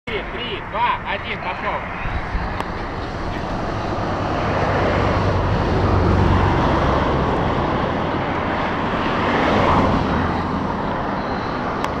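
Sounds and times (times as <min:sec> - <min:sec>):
wind buffeting microphone: 0:01.8 - 0:12.0.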